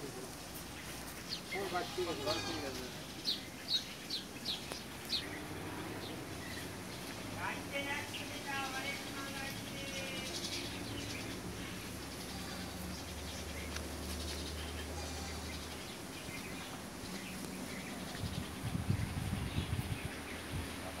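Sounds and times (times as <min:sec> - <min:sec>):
small birds chirping: 0:00.0 - 0:21.0.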